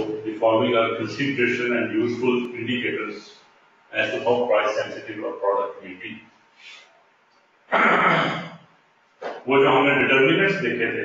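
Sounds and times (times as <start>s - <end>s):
man talking: 0.0s - 6.8s, 9.3s - 11.0s
man clearing his throat: 7.7s - 8.6s.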